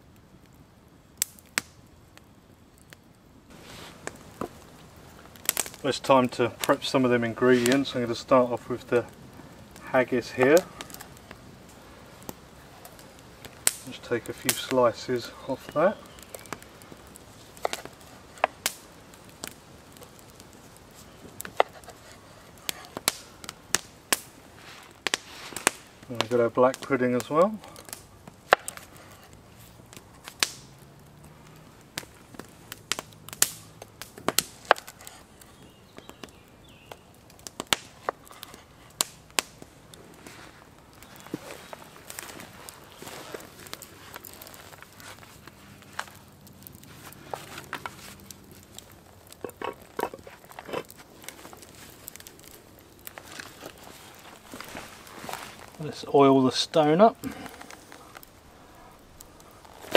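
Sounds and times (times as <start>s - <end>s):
campfire wood crackling: 0.0s - 59.9s.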